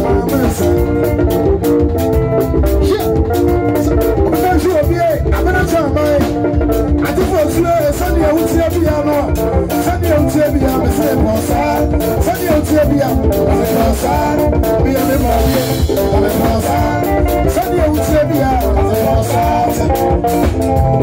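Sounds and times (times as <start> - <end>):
man singing into microphone: 0.0 - 1.2, 2.8 - 21.0
drum kit: 0.0 - 21.0
electric guitar: 0.0 - 21.0.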